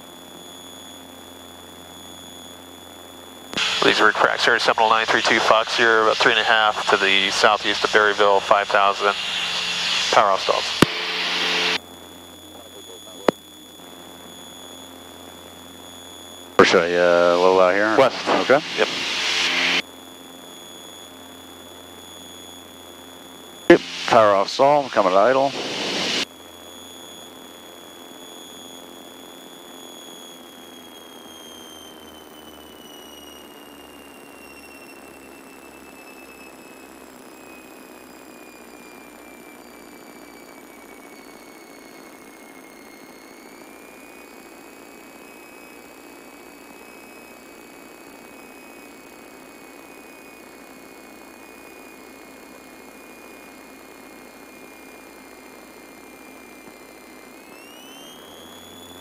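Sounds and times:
thin high whine: 0:00.0 - 0:59.0
aircraft engines idling: 0:03.6 - 0:15.8, 0:16.6 - 0:20.0, 0:22.8 - 0:27.4.

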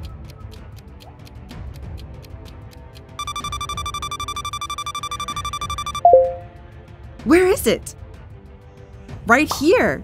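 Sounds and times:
timer alarm beeping: 0:03.2 - 0:06.5.

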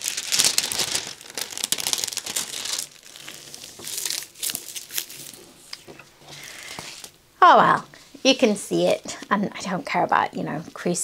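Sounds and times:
plastic film crinkling under hands: 0:00.0 - 0:07.1.

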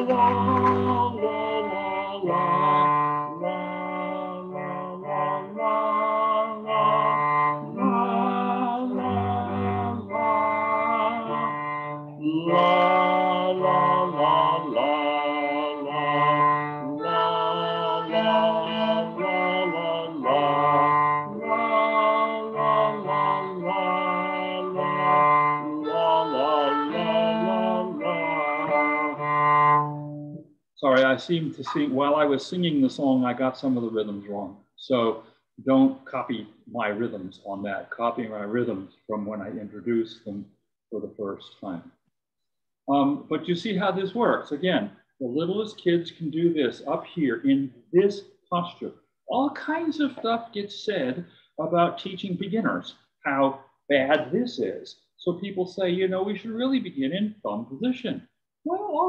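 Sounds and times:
man singing: 0:00.0 - 0:03.5, 0:12.2 - 0:29.2, 0:30.8 - 0:37.2
low sustained cello notes: 0:00.0 - 0:04.0, 0:07.0 - 0:14.2, 0:24.6 - 0:32.3.

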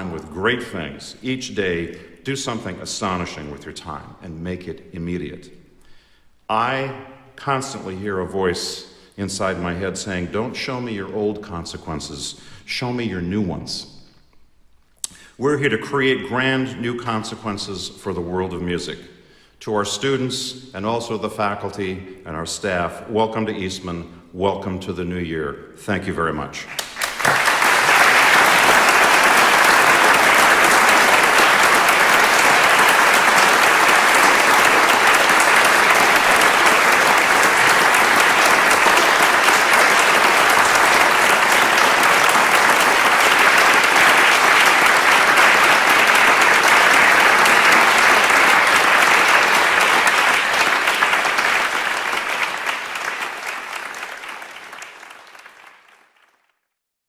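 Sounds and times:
audience applause: 0:26.7 - 0:56.5.

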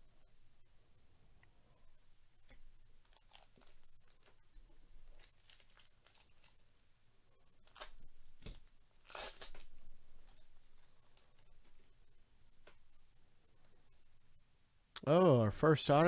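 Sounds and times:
wrapper being torn open: 0:03.0 - 0:04.5, 0:05.1 - 0:06.6, 0:07.6 - 0:11.5
trading cards rustling: 0:03.0 - 0:06.6, 0:07.6 - 0:11.9.

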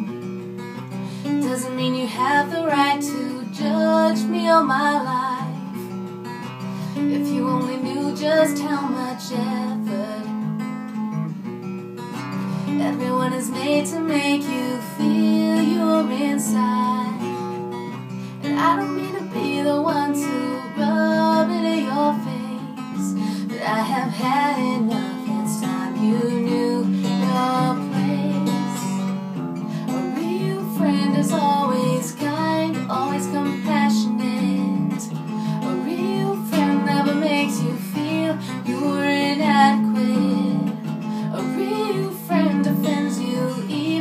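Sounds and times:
acoustic guitar strumming chords: 0:00.0 - 0:44.0
woman singing: 0:01.2 - 0:05.9, 0:06.9 - 0:10.6, 0:12.6 - 0:17.6, 0:18.3 - 0:29.1, 0:29.8 - 0:44.0.

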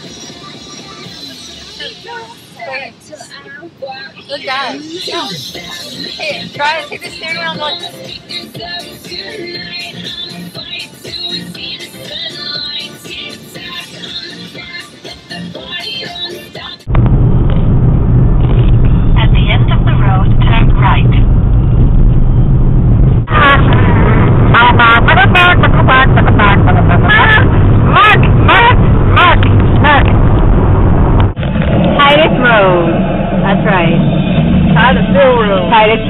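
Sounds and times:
car interior road rumble: 0:16.9 - 0:36.0.

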